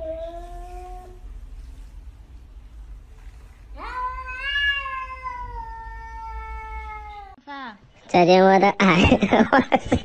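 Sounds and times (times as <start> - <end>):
cat meowing: 3.8 - 7.4.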